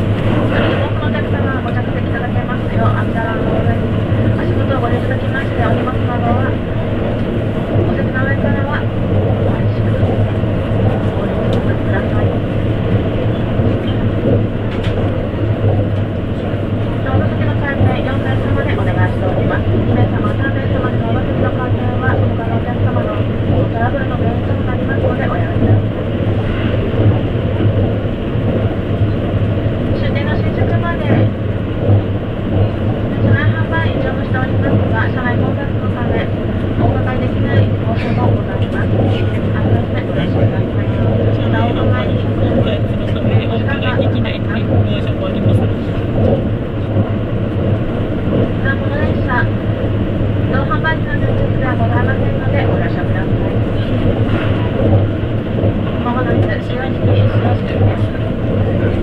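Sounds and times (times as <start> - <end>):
train carriage low hum: 0.0 - 59.0
train wheels rumbling on rails: 0.0 - 59.0.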